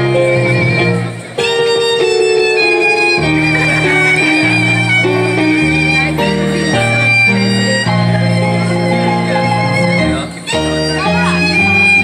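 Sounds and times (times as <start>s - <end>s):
bowed violin melody: 0.0s - 12.0s
electronic keyboard chords: 0.0s - 12.0s.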